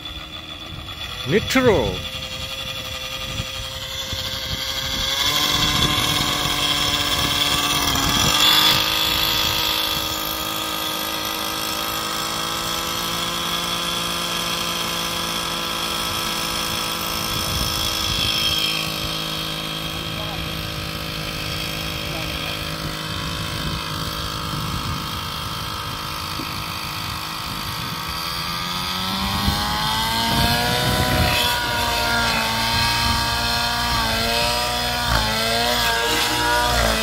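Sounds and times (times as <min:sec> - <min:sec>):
model helicopter engine running: 0:00.0 - 0:37.0.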